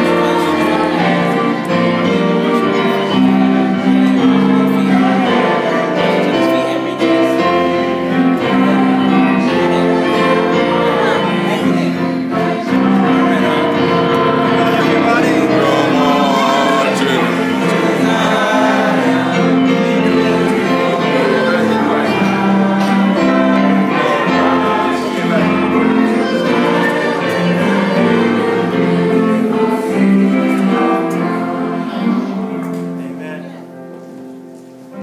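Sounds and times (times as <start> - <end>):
group singing a hymn: 0.0 - 35.0
keyboard accompaniment: 0.0 - 35.0.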